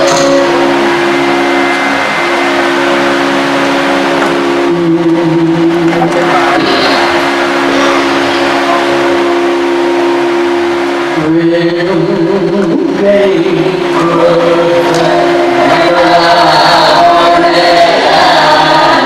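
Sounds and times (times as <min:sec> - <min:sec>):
two-note musical drone: 0:00.0 - 0:19.0.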